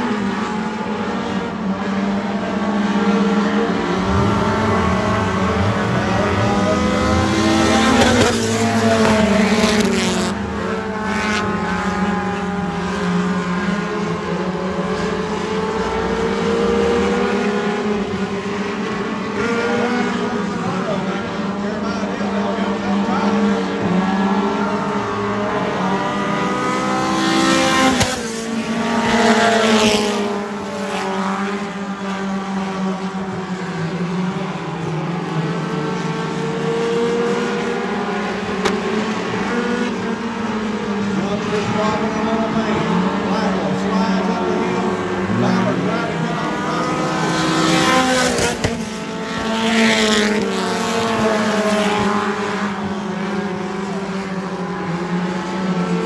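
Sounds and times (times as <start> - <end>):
race car engines running hard: 0.0 - 56.0.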